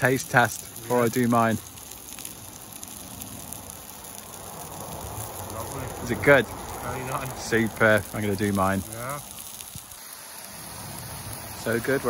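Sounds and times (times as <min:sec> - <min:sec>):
patties sizzling in oil: 0:00.0 - 0:12.0.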